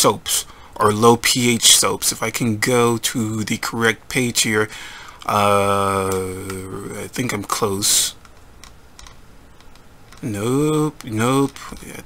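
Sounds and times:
computer keyboard clicks: 8.2 - 10.3.

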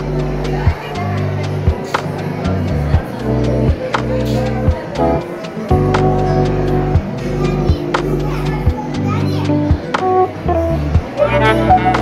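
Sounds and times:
music with bass and beat: 0.0 - 12.0
people's voices: 0.0 - 12.0.

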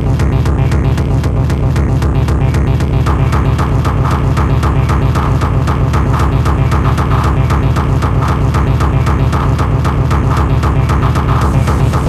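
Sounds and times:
electronic dance music: 11.0 - 12.0.

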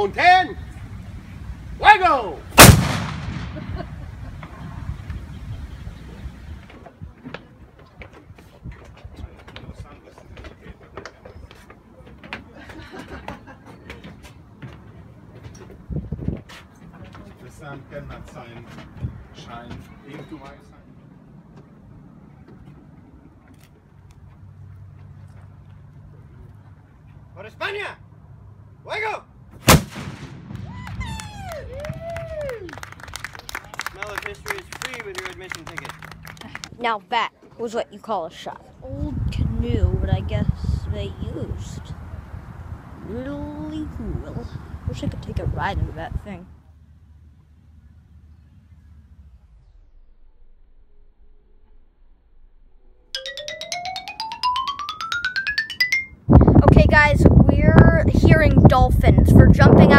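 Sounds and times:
cannon boom: 2.6 - 4.2, 29.6 - 31.1
wind buffeting microphone: 2.6 - 11.6, 15.6 - 16.6, 38.6 - 46.4, 56.2 - 59.9
people clapping: 30.6 - 36.8
boy speaking: 56.6 - 59.9.

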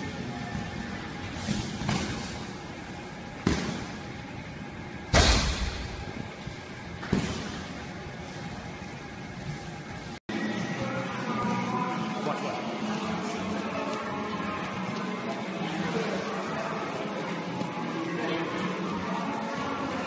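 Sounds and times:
gym background noise: 0.0 - 20.0.

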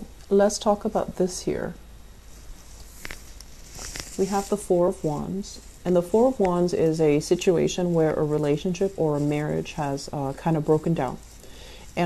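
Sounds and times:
soft intake of breath: 11.3 - 12.0.

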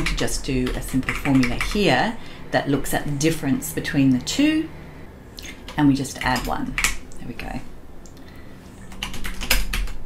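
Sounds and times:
computer keyboard keys clicking: 0.0 - 1.8, 8.9 - 10.0.

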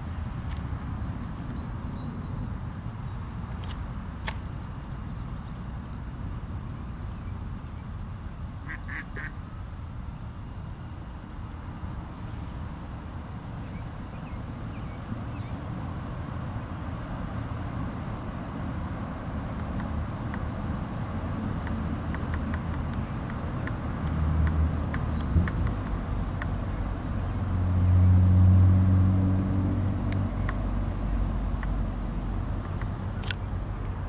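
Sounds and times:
quack-like bird calls: 8.6 - 9.4.

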